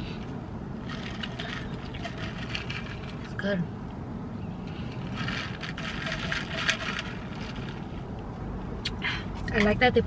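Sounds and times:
ice cubes rattling in plastic cup: 0.9 - 3.1, 5.2 - 7.7.

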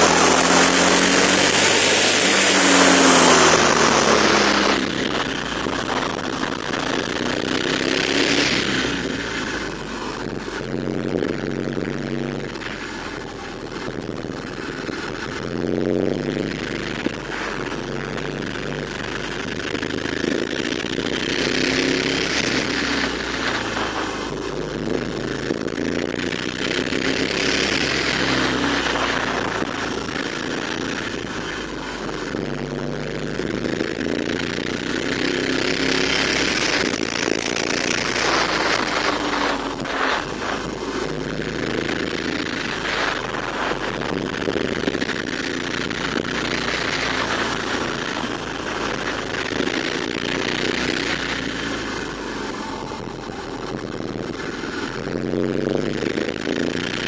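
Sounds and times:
motorcycle engine revving: 0.0 - 57.0.

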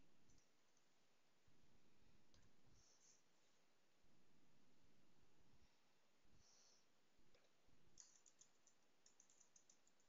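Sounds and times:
computer mouse click: 8.0 - 10.0.

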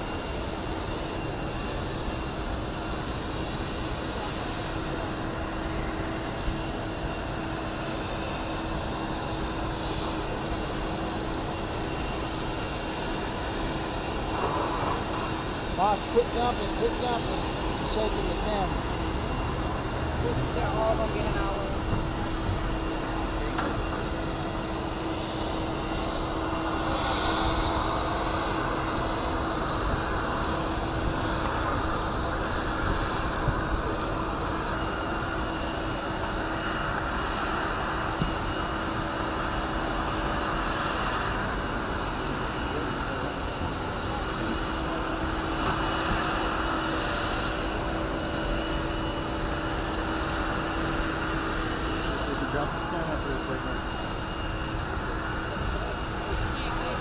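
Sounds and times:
jet engines whining: 0.0 - 57.0
crowd chattering: 3.9 - 38.3, 40.4 - 49.4, 50.0 - 57.0.

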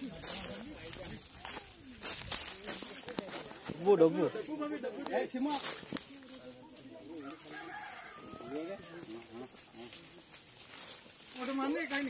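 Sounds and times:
rooster crowing: 7.1 - 9.2.

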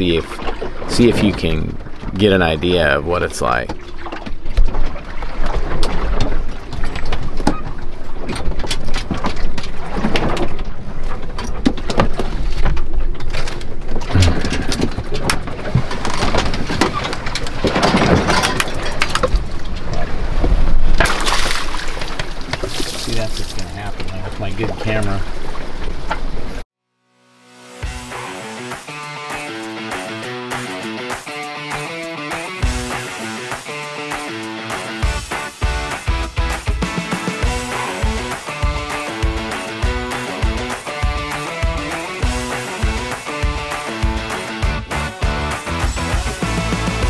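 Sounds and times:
boat knocks and clatter: 0.0 - 26.6
rough seas breaking around hull: 0.0 - 26.7, 29.9 - 47.0.

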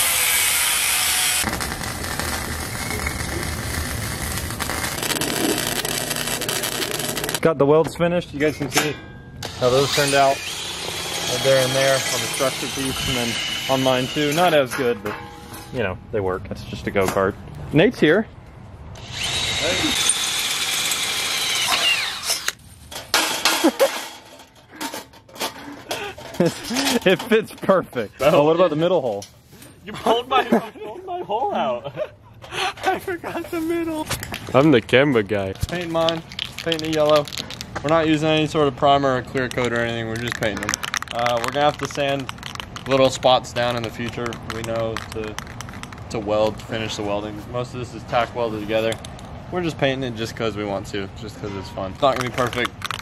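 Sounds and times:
power drill drilling metal: 0.0 - 1.5, 4.9 - 7.4, 9.4 - 14.5, 19.0 - 22.6
welding arc crackling and sizzling: 0.0 - 7.4.

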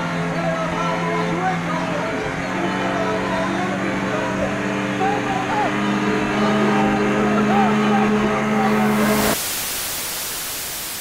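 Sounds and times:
droning hum: 0.0 - 9.4
voices: 0.0 - 9.4
tv static hiss: 8.7 - 11.0.

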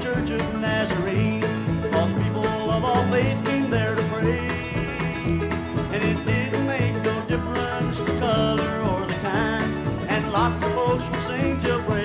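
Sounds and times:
bluegrass band playing: 0.0 - 12.0.

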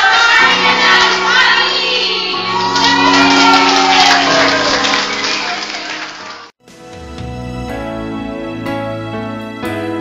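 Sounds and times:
women singing and shouting: 0.0 - 3.7.

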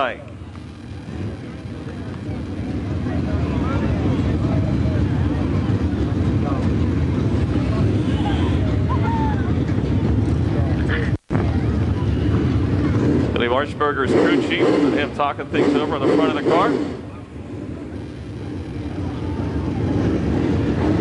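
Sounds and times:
engines rumbling: 0.0 - 21.0
faint voices: 0.0 - 21.0.

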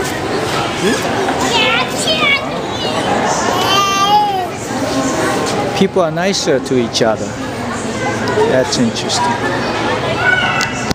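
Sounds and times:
crowd murmur in a hall: 0.0 - 10.9
children calling out: 0.7 - 4.7, 9.5 - 10.9.

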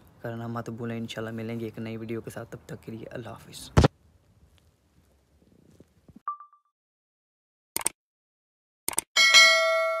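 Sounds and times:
quick clicks: 7.8 - 8.0, 8.9 - 9.1
bell chime ringing: 9.2 - 10.0.

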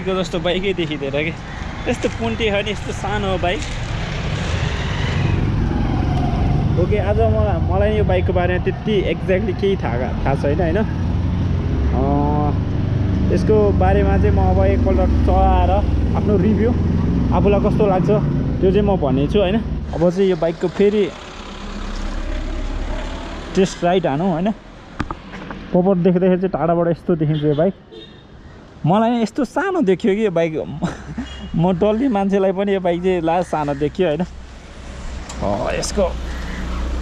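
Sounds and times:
motorcycle engine rumbling: 0.0 - 25.7.

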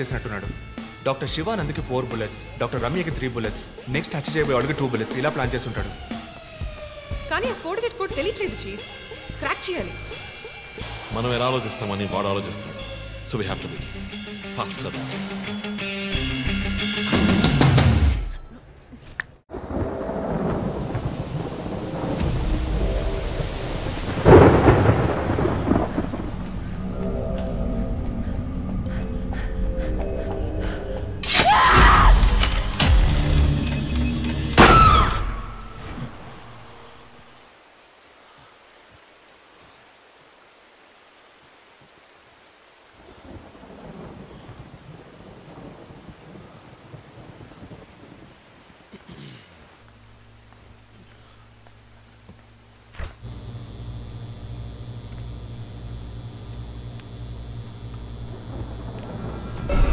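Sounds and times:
steady rain falling: 2.9 - 13.8, 19.5 - 28.4, 35.4 - 59.9
thunder clap rumbling: 19.5 - 27.3, 43.2 - 48.7, 53.2 - 59.9.

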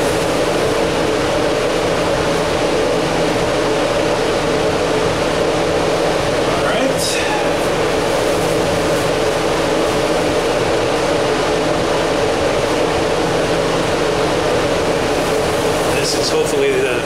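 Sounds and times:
ventilation fan drone: 0.0 - 17.0.

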